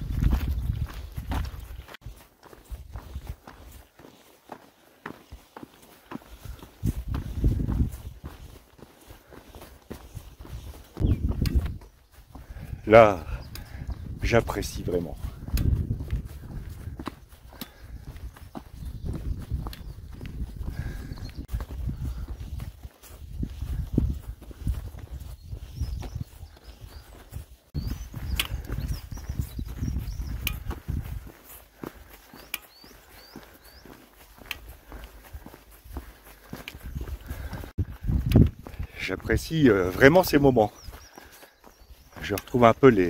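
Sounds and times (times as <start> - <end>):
wind rumbling on microphone: 0.0 - 3.8, 6.4 - 8.6, 9.9 - 32.1, 34.6 - 42.3
footsteps on stony dirt trail: 0.0 - 43.0
high bird chirps: 10.0 - 12.5, 25.2 - 31.0, 32.3 - 34.5.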